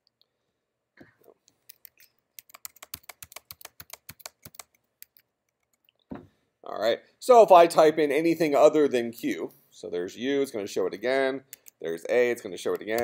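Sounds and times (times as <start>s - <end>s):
typing on computer keyboard: 1.7s - 5.2s.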